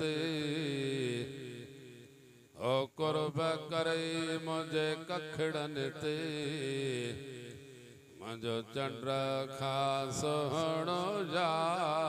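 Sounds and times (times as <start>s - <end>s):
man chanting through microphone: 0.0s - 12.0s.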